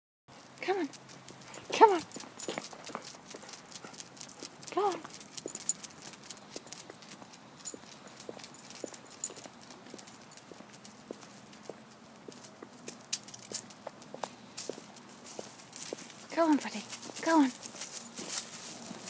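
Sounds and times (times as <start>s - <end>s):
dog claws clicking on concrete: 0.9s - 14.8s.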